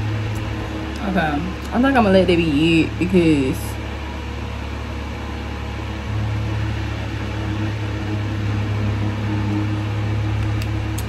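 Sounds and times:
electric fans humming: 0:00.0 - 0:11.0.

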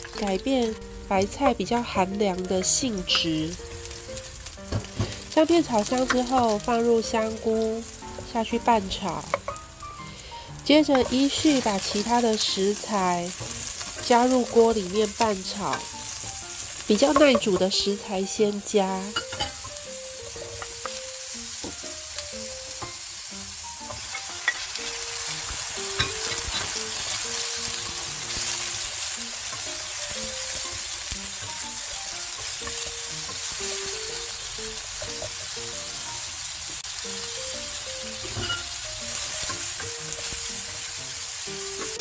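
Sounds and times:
vegetables sizzling in hot oil: 0:00.0 - 0:42.0
spatula tapping and scraping pan: 0:08.9 - 0:09.6, 0:10.8 - 0:11.4, 0:17.0 - 0:17.8.

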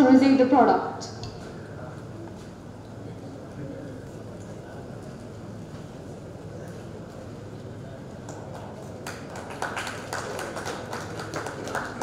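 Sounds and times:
steady room hum: 0:00.0 - 0:12.0
small group clapping: 0:08.2 - 0:12.0.

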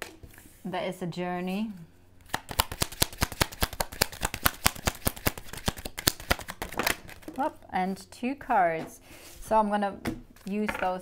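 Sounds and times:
cards being shuffled: 0:02.2 - 0:07.6.

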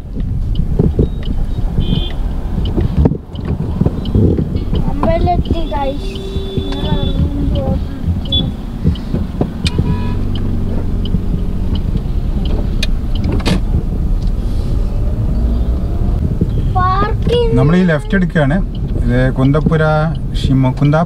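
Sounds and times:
sharp clicks and knocks: 0:00.0 - 0:05.6, 0:06.4 - 0:14.4
car road and engine rumble: 0:00.0 - 0:21.0.

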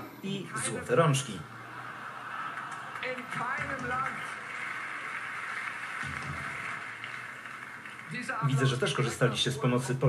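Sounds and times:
audience laughing and cheering: 0:01.4 - 0:08.8.

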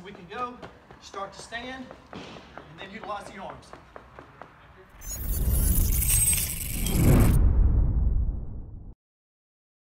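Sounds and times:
low rumble: 0:05.0 - 0:09.0.

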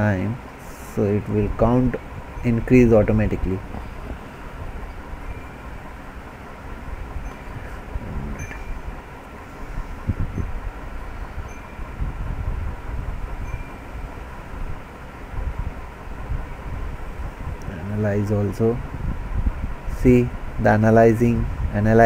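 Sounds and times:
faint steady hum: 0:00.0 - 0:22.0
low background rumble: 0:00.0 - 0:22.0
soft low thumps: 0:01.6 - 0:09.2.

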